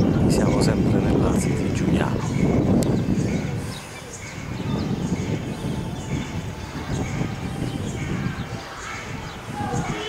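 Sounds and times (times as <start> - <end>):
birds calling: 0.0 - 10.0.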